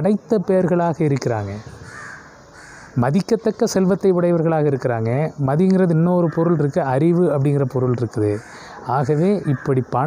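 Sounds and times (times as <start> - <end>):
crow cawing: 1.6 - 3.0, 6.1 - 6.8, 8.2 - 9.9
man's voice: 3.0 - 10.0.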